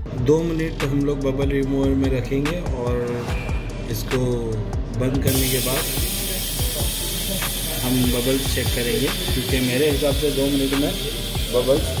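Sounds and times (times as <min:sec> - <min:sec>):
air hissing out of machine: 0:05.3 - 0:12.0.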